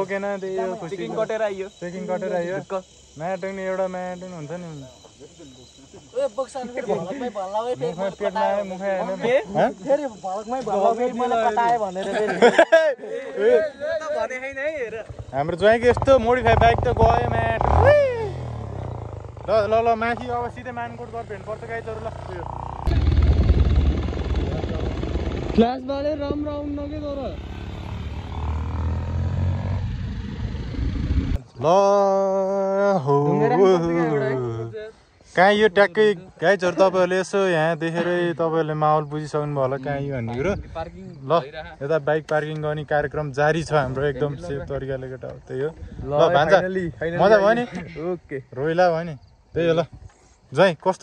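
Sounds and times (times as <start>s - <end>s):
people talking: 0.0s - 18.5s, 19.4s - 23.2s, 24.2s - 27.5s, 31.4s - 49.9s
crickets chirring: 0.0s - 51.0s
motorcycle engine rumbling: 14.2s - 31.4s
road and wind noise: 14.5s - 31.5s, 39.8s - 48.0s.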